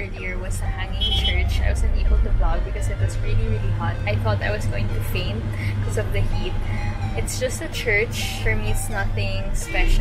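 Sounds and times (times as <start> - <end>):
road noise: 0.0 - 10.0
vehicle engine rumble: 0.0 - 10.0
woman talking: 0.0 - 10.0.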